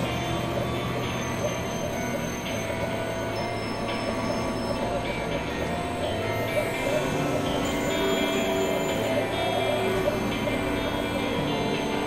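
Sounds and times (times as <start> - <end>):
industrial synthesizer noise drone: 0.0 - 12.0.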